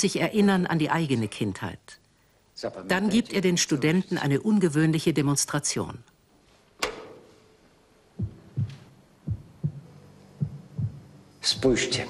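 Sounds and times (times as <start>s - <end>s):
heartbeat thumps: 8.1s - 12.0s.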